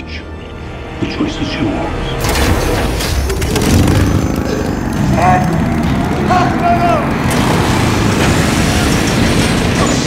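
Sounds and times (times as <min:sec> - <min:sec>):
motorcycle engine running rough: 0:03.4 - 0:09.4.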